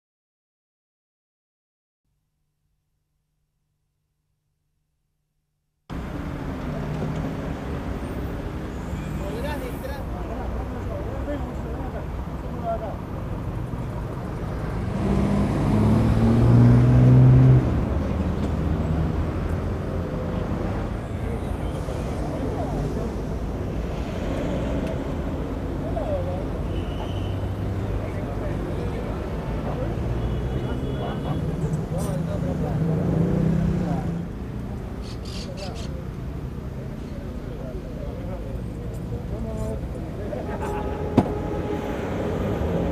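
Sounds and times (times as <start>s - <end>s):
car engines running: 27.5s - 42.9s.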